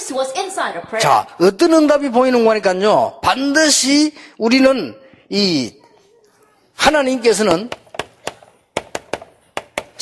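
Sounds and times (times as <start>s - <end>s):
chalk tapping on chalkboard: 7.5s - 10.0s.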